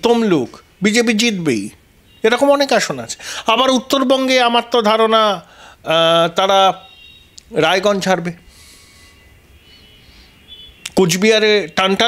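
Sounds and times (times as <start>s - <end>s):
faint high-pitched whine: 0.0s - 12.0s.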